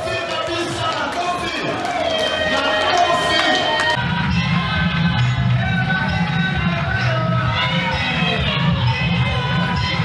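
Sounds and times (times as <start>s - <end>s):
crowd talking and cheering: 0.0s - 10.0s
music: 1.8s - 10.0s
heavy bass: 3.7s - 10.0s.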